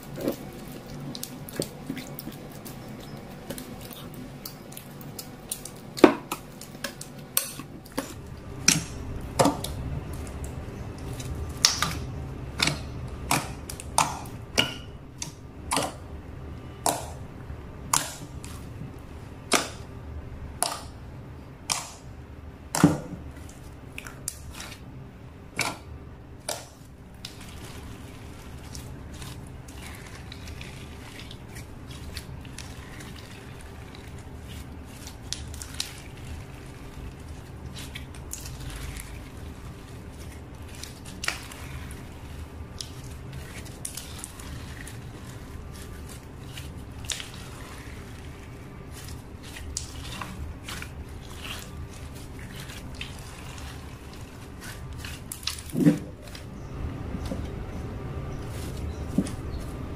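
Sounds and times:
slime squishing: 0:00.0 - 0:59.9.

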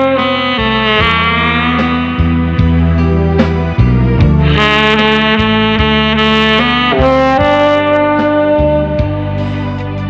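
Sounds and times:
backing track with bass and drums: 0:00.0 - 0:10.0
tenor saxophone ballad melody: 0:00.0 - 0:10.0.

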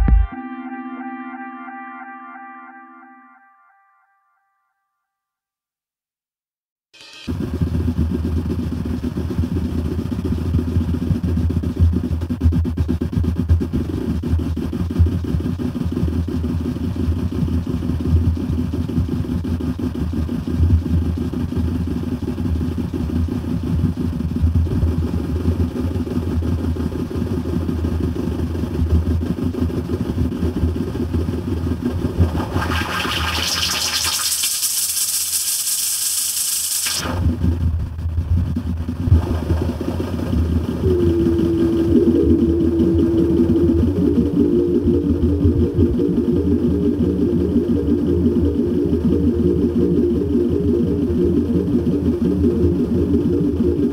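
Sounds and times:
grainy low electronic rumble: 0:00.0 - 0:03.4, 0:07.3 - 0:34.3, 0:37.0 - 0:53.9
held synth tone: 0:00.0 - 0:04.7, 0:32.0 - 0:34.7, 0:40.4 - 0:53.9
bright hiss: 0:33.3 - 0:37.0.

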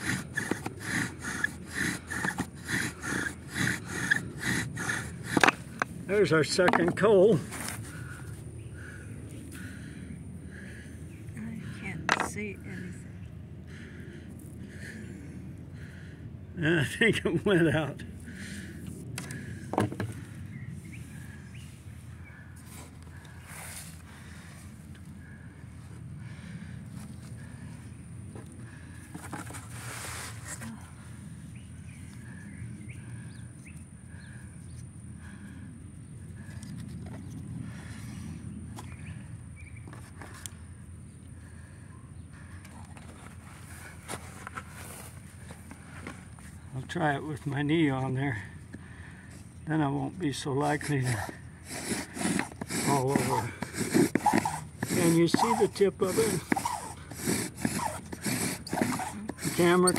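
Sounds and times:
steady low rumble: 0:01.6 - 0:39.8.

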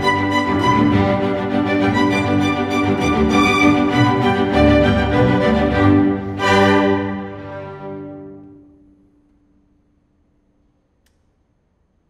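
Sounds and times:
string orchestra chord: 0:00.0 - 0:09.0.

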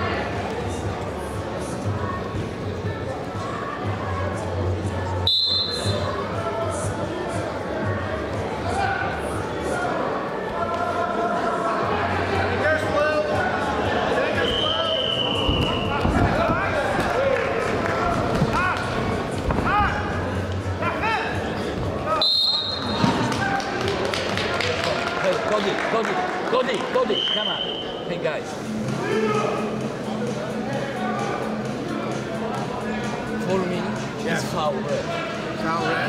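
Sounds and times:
murmur of arena crowd: 0:00.0 - 0:36.0
referee's whistle blast: 0:05.3 - 0:06.1, 0:22.2 - 0:23.0.

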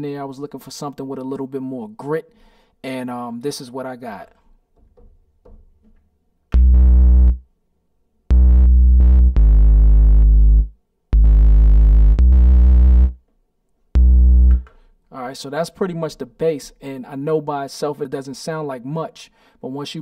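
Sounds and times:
gritty synth bass notes: 0:06.5 - 0:07.4, 0:08.3 - 0:13.2, 0:14.0 - 0:14.7.

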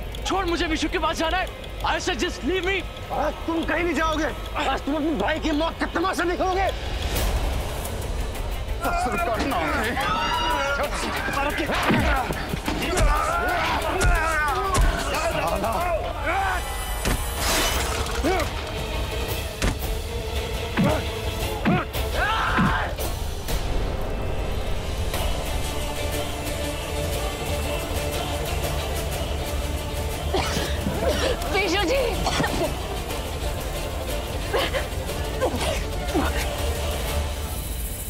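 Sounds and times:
background music: 0:00.0 - 0:38.0.

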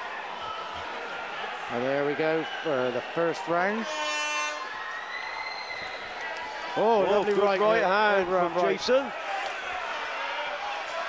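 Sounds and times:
buzzer blast: 0:03.8 - 0:04.7.

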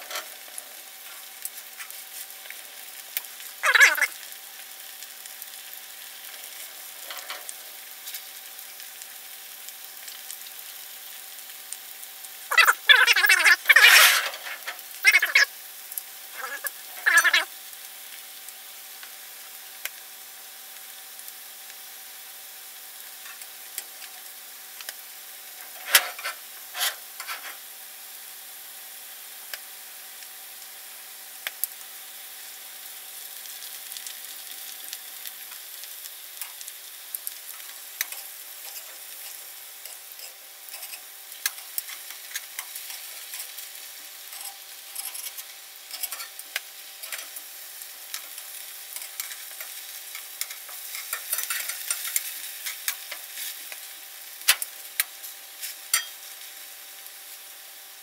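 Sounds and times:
potatoes sizzling in hot oil: 0:00.0 - 0:58.0.

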